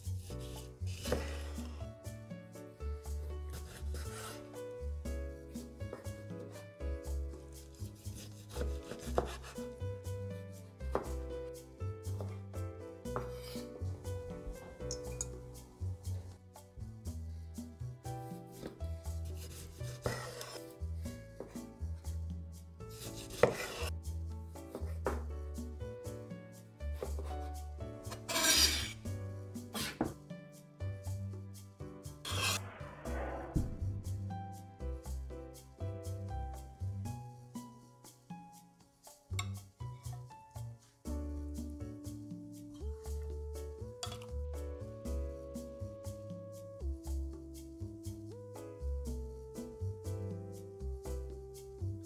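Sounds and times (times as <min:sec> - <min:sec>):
background music: 0:00.0 - 0:52.0
knife scraping cutting board: 0:00.1 - 0:01.8, 0:03.5 - 0:04.7, 0:07.6 - 0:09.8, 0:13.1 - 0:15.3, 0:18.3 - 0:21.7, 0:22.9 - 0:23.9, 0:27.0 - 0:30.2, 0:32.1 - 0:32.8
knife chopping on wooden board: 0:01.0 - 0:01.8, 0:03.5 - 0:04.4, 0:07.7 - 0:09.8, 0:10.9 - 0:11.2, 0:18.5 - 0:20.7, 0:23.0 - 0:23.9, 0:29.7 - 0:30.2.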